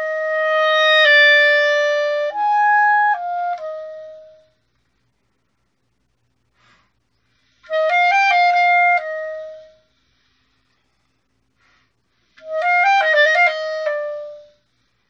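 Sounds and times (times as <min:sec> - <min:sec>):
solo clarinet playing: 0:00.0 - 0:04.5, 0:07.6 - 0:09.9, 0:12.4 - 0:14.6.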